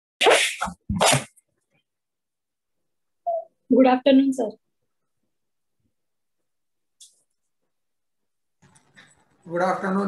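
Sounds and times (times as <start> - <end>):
person sneezing or coughing: 0.2 - 1.3.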